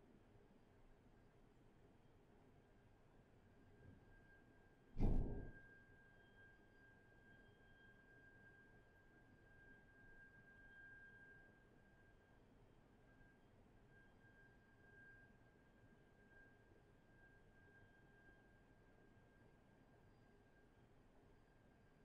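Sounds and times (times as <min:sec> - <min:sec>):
faint steady high tone: 0:02.0 - 0:22.0.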